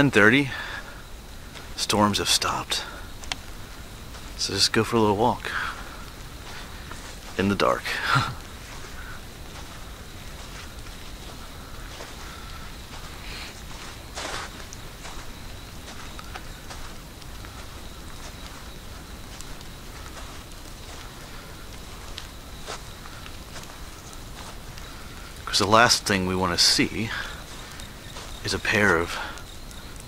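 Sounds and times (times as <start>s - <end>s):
footsteps on wet sandy trail: 0.0s - 30.0s.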